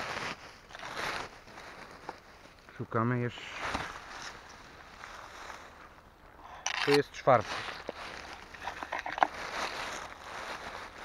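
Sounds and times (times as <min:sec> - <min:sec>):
footsteps rustling through dry leaves: 0:00.0 - 0:06.4, 0:07.0 - 0:11.0.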